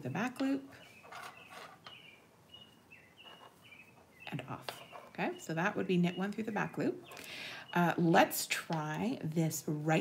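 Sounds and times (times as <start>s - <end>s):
knitting needles and yarn: 0.0s - 10.0s.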